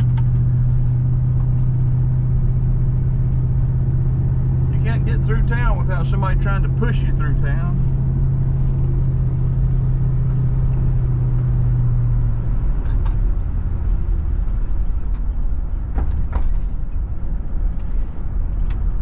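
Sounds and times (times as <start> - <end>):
car engine drone: 0.0 - 19.0
road noise: 0.0 - 19.0.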